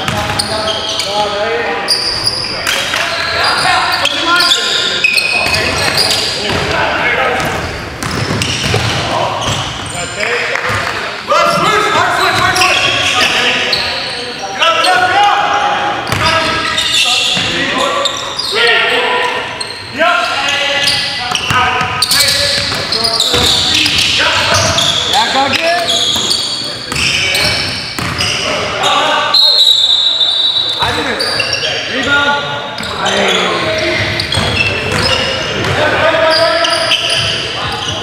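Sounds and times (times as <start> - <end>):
basketball bouncing on wooden court: 7.4 - 9.8, 21.3 - 24.9, 26.9 - 28.3, 34.0 - 35.8.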